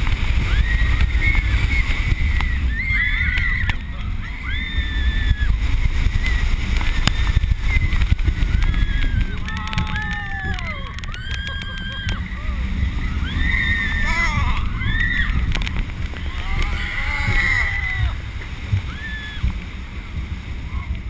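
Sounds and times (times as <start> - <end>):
roller coaster train rumbling: 0.0 - 21.0
wind buffeting microphone: 0.0 - 21.0
riders screaming: 0.1 - 19.9.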